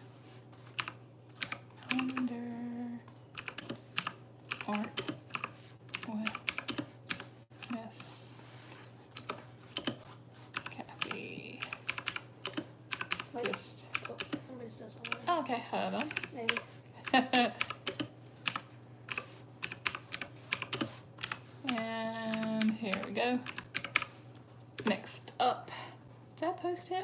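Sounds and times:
computer keyboard typing: 0:00.7 - 0:02.3, 0:03.4 - 0:07.8, 0:09.1 - 0:14.4, 0:15.0 - 0:15.3, 0:16.0 - 0:24.2.

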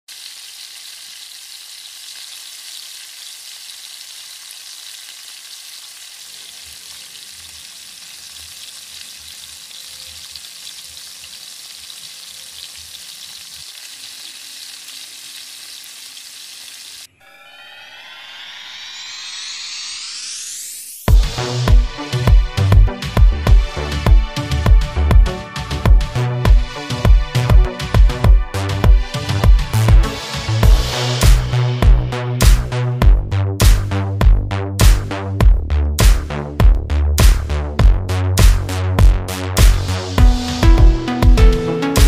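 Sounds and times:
food sizzling in oil: 0:00.1 - 0:17.1
rising electronic sweep: 0:17.1 - 0:21.4.

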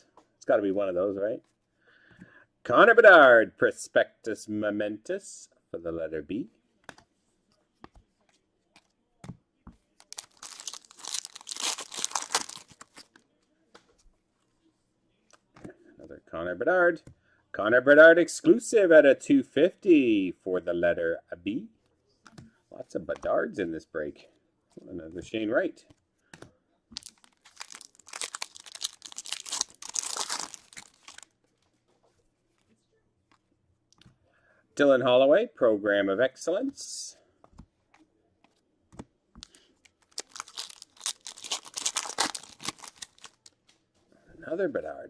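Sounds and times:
foil wrapper tearing and crinkling: 0:10.1 - 0:13.1, 0:27.0 - 0:31.2, 0:40.1 - 0:43.5.

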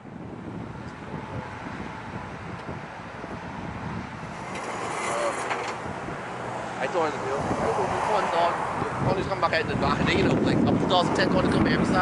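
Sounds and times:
wind on microphone: 0:00.0 - 0:12.0
distant jet engines roaring: 0:00.1 - 0:12.0.

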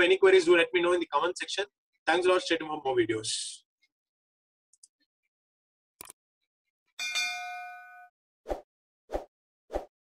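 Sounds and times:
notification bell ding: 0:07.0 - 0:08.1.

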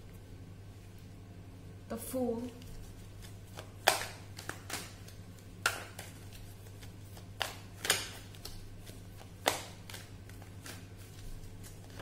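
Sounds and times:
steady low hum: 0:00.0 - 0:12.0
cards clicking and tapping: 0:03.5 - 0:12.0.

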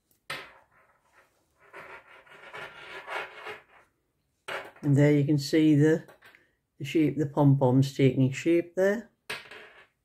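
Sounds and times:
rubbing against microphone: 0:00.6 - 0:03.9.

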